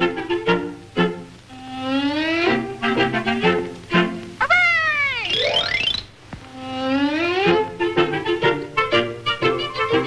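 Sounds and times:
cartoon orchestra music: 5.2s - 6.1s, 6.8s - 10.0s.

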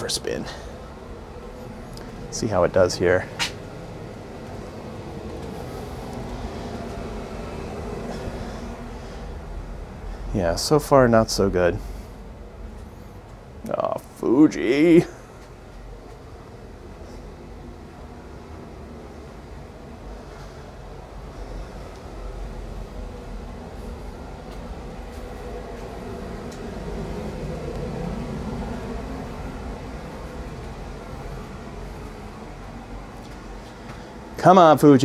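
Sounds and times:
heating boiler rumbling: 0.0s - 35.0s.

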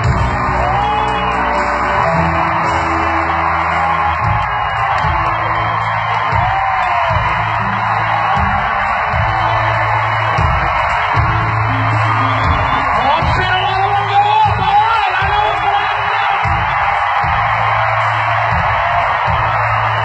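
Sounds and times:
crowd yelling and whooping: 0.0s - 20.0s
loud live band music: 0.0s - 20.0s.

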